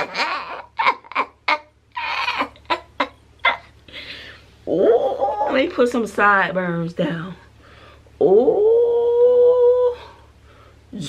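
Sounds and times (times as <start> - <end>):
woman laughing: 0.0 - 3.8.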